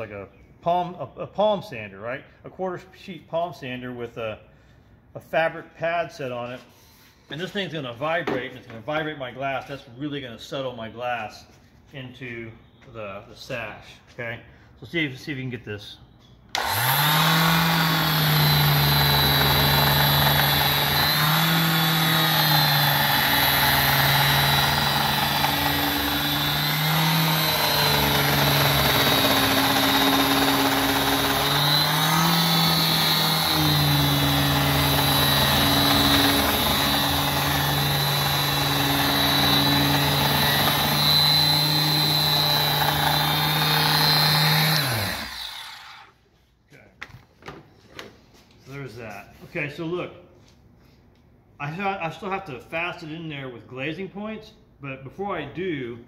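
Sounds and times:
palm sander humming on glass: 16.6s - 45.9s.

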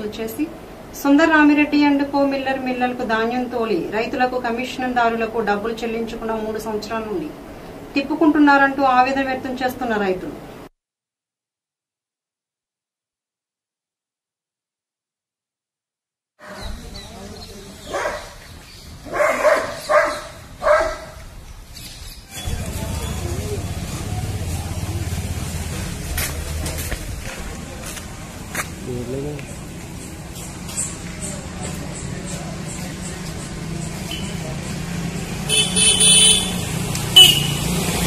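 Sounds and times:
faint steady background noise: 0.0s - 10.7s
vehicle horn honking: 35.5s - 37.8s.

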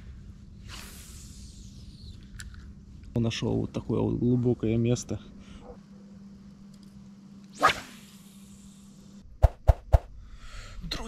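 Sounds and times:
fishing line whooshing out: 7.5s - 8.6s.

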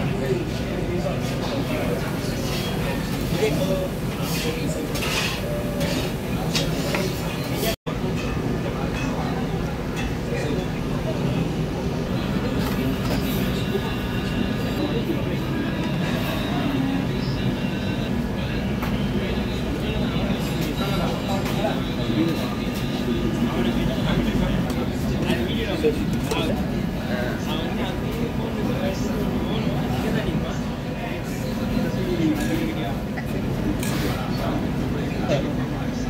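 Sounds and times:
utensils and plates clinking: 4.1s - 10.8s.

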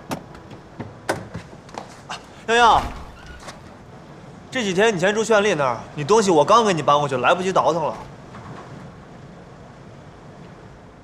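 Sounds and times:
low background ambience: 0.0s - 11.0s.

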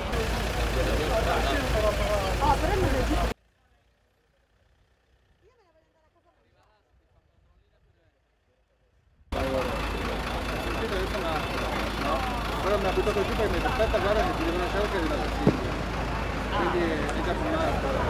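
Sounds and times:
people talking: 0.0s - 4.4s, 9.3s - 18.0s
vehicle engine running: 0.0s - 7.4s, 8.1s - 18.0s.

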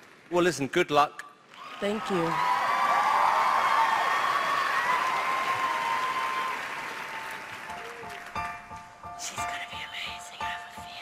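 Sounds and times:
audience applauding and cheering: 1.5s - 9.0s.

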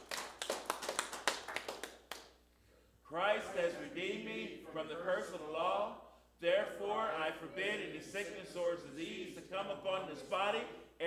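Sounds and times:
people clapping: 0.0s - 2.4s.

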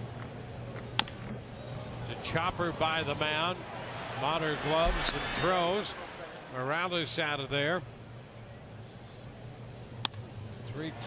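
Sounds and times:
low steady background hum: 0.0s - 11.0s.

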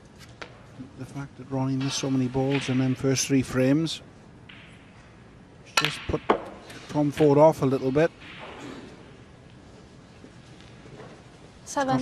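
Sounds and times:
cue striking snooker ball: 5.7s - 7.4s.

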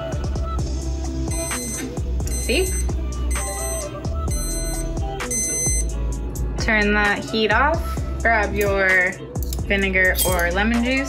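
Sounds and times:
background music with steady beat: 0.0s - 11.0s
thermometer alarm beeping: 1.3s - 6.0s.

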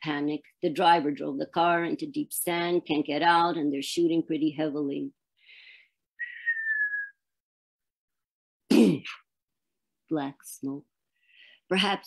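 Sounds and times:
woman whistling: 6.2s - 7.2s.

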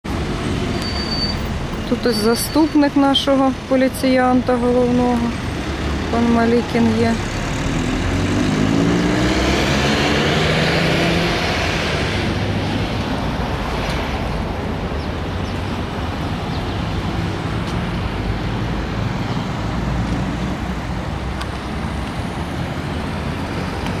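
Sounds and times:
street traffic: 0.0s - 24.0s
vehicle engine pulling away: 7.1s - 12.9s.

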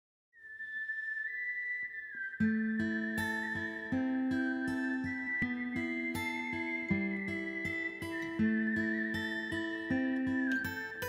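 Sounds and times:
whistled melody: 0.4s - 11.0s.

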